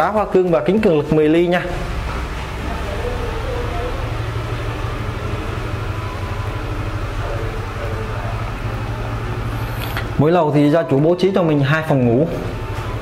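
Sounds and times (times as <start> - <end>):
low rumbling: 0.0 - 13.0.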